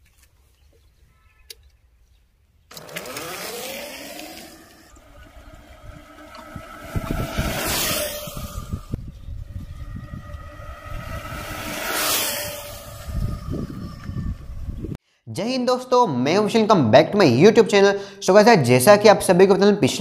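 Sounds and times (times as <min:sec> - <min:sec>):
electric motor whine: 0:02.7 - 0:14.9.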